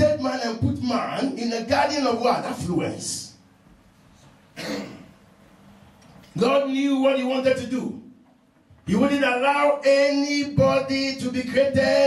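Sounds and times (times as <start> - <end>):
man clearing throat: 4.5 - 5.2.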